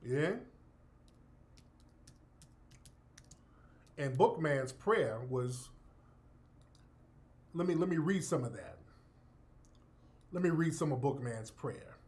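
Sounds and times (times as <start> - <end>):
faint keyboard typing: 1.0 - 4.4, 6.5 - 6.9.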